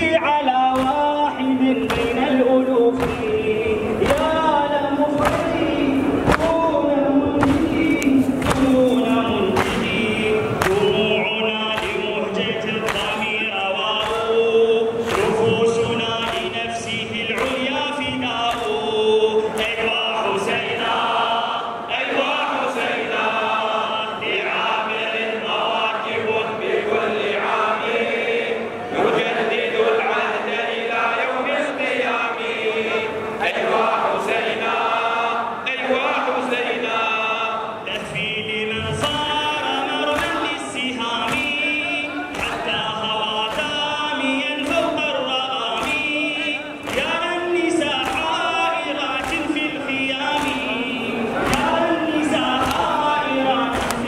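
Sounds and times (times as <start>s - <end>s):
crowd of men chanting in unison: 0.0s - 54.0s
men singing a lament: 0.0s - 54.0s.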